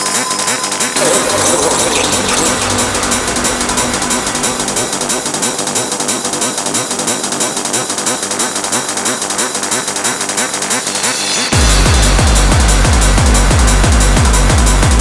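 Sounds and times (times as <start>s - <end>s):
fast hardcore electronic music: 0.0s - 15.0s
low bass tone: 0.6s - 7.0s.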